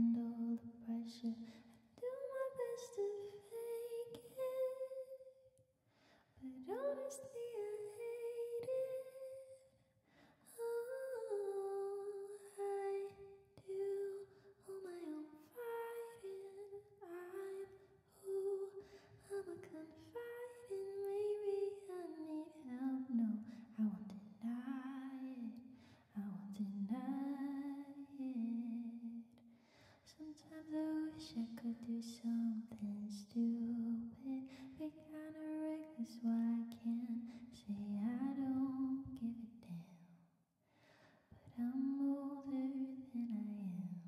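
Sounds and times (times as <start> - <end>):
woman singing softly: 0.0 - 5.3, 6.4 - 9.7, 10.4 - 29.4, 30.0 - 40.1, 41.4 - 44.0.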